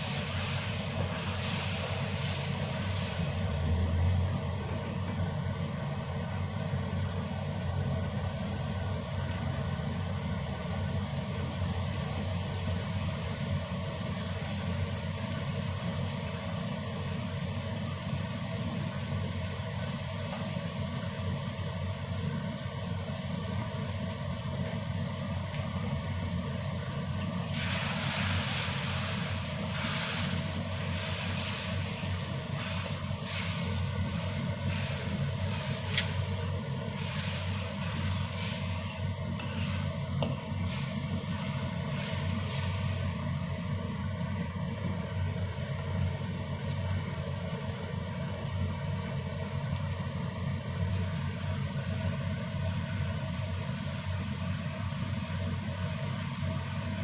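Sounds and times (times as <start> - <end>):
paste sizzling in oil: 0.0 - 49.7.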